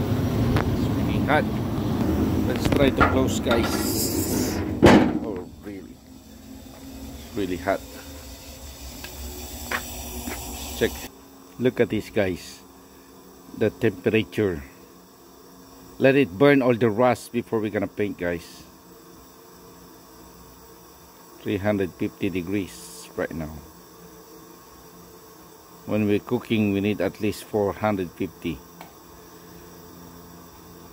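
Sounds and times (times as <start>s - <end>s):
propane burners rushing: 0.0s - 11.1s
propane burners hissing: 0.0s - 30.9s.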